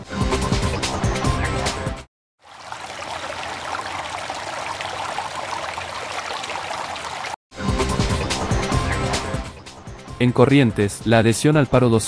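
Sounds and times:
stream of water trickling: 2.4s - 7.4s.

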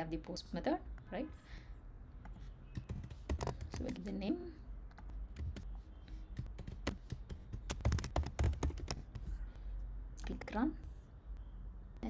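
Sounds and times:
computer keyboard typing: 2.7s - 4.2s, 5.3s - 5.7s, 6.4s - 9.3s.

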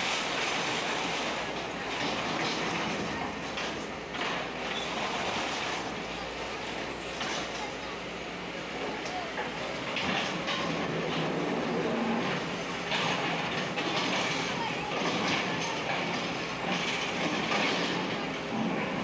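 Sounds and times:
excavator machinery clatter: 0.0s - 19.0s.

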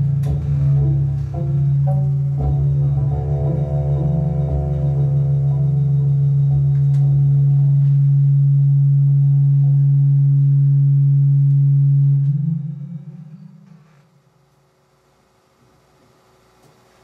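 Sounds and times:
cello drone note: 0.0s - 14.3s.

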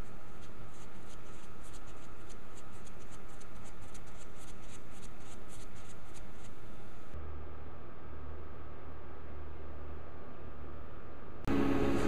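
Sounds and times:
paintbrush strokes on canvas: 0.0s - 7.2s
steady background hiss: 0.0s - 12.0s.

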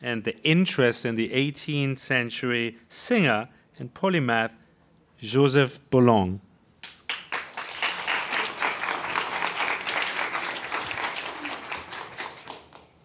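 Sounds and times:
audience applauding: 7.1s - 13.0s.

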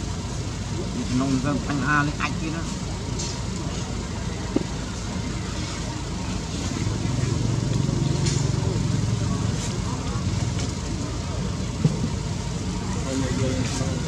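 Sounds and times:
indistinct voices: 0.0s - 14.0s.

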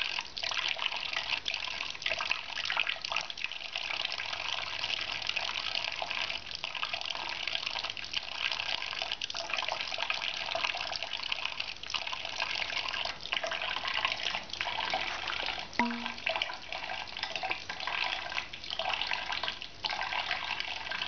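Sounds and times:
tap running into a sink: 15.4s - 16.4s.

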